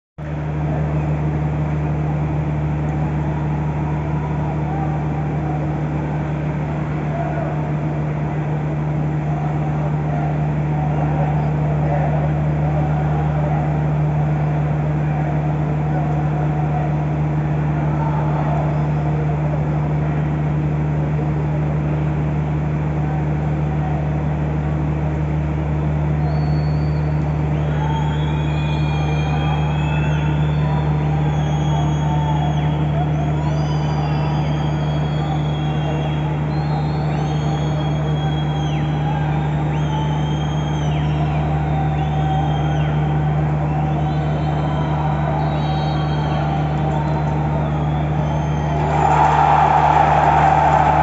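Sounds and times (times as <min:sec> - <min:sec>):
steady low hum: 0:00.2 - 0:51.0.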